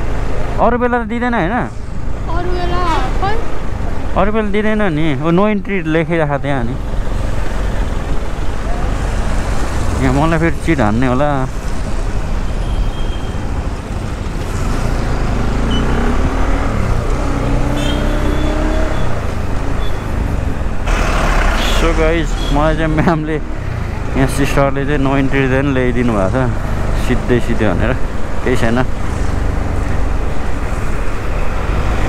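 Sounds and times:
road traffic: 0.0 - 32.0
wind: 0.0 - 32.0.

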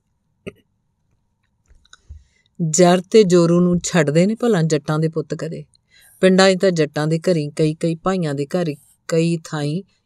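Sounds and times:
faint mouth clicks: 1.7 - 2.2
woman narrating: 2.6 - 9.9.

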